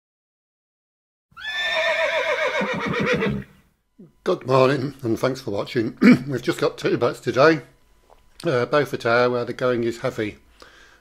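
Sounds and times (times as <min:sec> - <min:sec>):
horse whinnying: 0:01.4 - 0:03.7.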